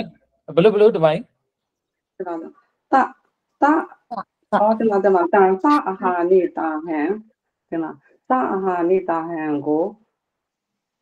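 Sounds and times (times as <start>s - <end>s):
person talking: 3.6s - 7.2s.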